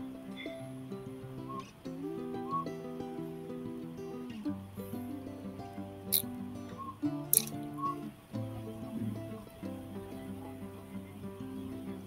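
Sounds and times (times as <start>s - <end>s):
instrumental background music: 0.0s - 12.0s
sharp clicks: 7.4s - 7.6s.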